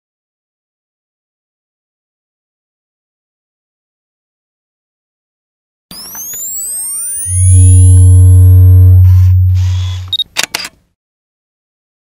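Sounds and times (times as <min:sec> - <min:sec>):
higher tones: 0:05.9 - 0:10.2
deep bass tone: 0:07.2 - 0:10.2.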